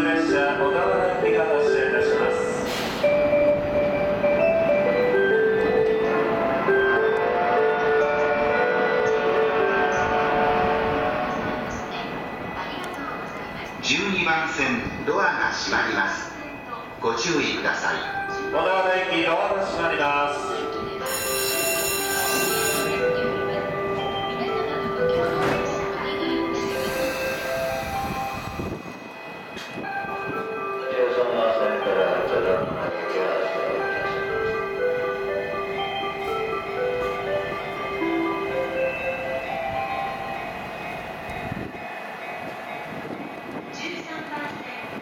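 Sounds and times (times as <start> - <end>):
platform signal buzzer: 21.1 - 23.1.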